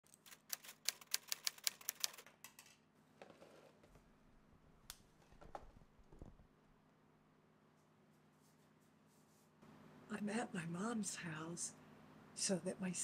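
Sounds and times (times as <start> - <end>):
rapid sharp clicks: 0.2 - 2.3.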